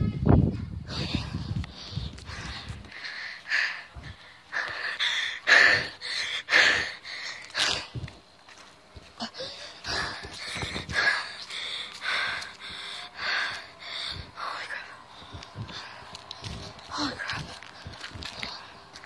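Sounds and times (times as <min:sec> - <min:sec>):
boy breathing hard: 0:00.8 - 0:08.2, 0:09.2 - 0:19.0.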